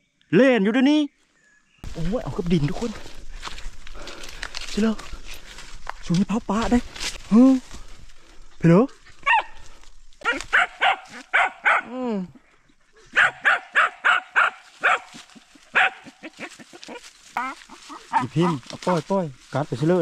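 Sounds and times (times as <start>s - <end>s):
dog barking: 9.2s - 9.6s, 10.3s - 12.0s, 13.1s - 16.3s, 17.4s - 19.0s.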